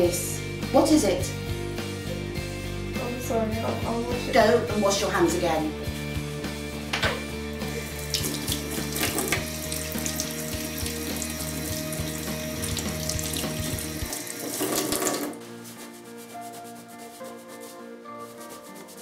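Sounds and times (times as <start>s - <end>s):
tap water running into steel sink: 6.9s - 15.4s
hands washing under water: 7.2s - 17.6s.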